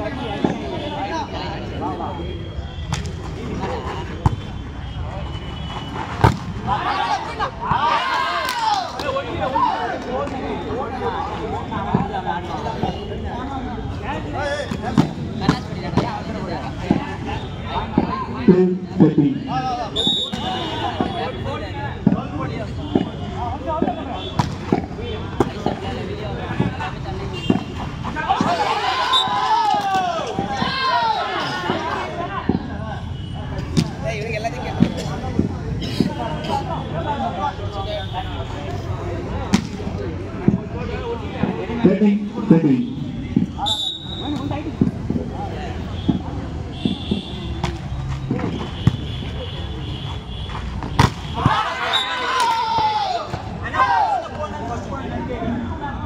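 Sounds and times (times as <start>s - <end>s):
spectators chattering: 0.0s - 56.0s.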